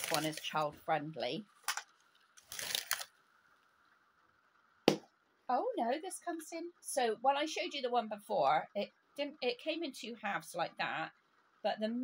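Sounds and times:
plastic capsule crinkly rustle: 0.0s - 0.7s, 1.6s - 3.7s.

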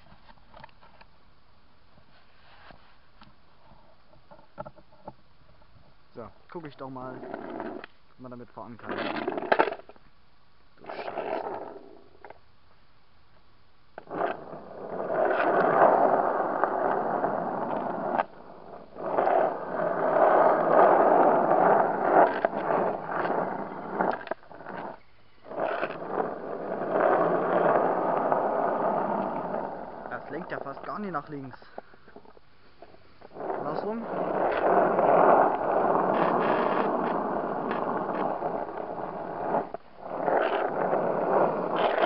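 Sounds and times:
longboard wheels rolling on asphalt: 0.0s - 42.0s.

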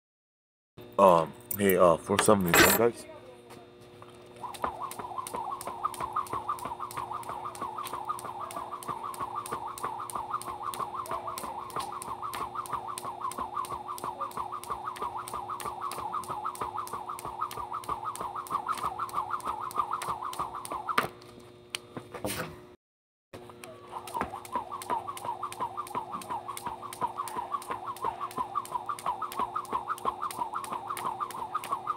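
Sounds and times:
skipping rope whirring and clicking: 4.3s - 22.5s, 23.4s - 31.9s.

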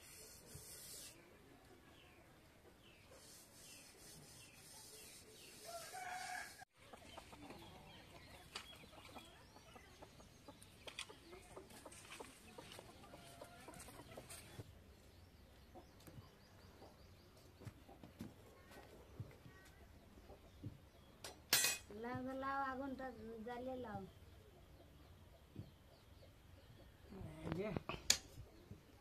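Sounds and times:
chicken clucking: 6.8s - 14.7s.

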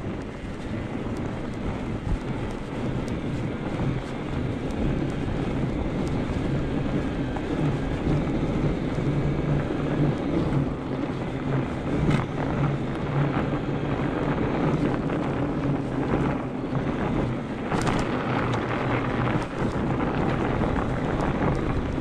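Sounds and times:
bike tires riding on snow: 0.0s - 22.0s
low hum from bike: 0.0s - 22.0s
wind buffeting microphone: 0.0s - 22.0s.

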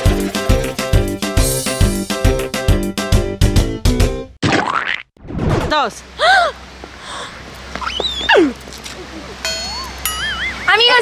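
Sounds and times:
cartoon gliding tone: 9.5s - 11.0s.

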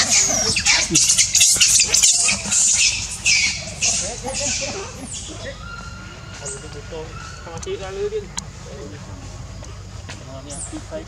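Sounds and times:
macaque screaming: 0.0s - 8.4s.

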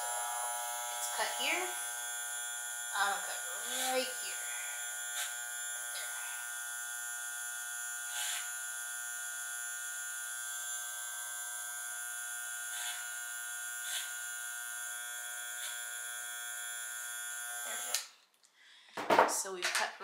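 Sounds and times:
electric hair clippers buzzing: 0.0s - 18.1s.

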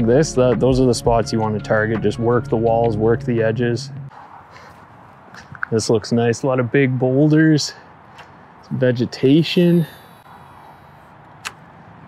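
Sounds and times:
quiet outdoor background: 0.0s - 12.0s
fishing line paying out: 9.4s - 11.1s.

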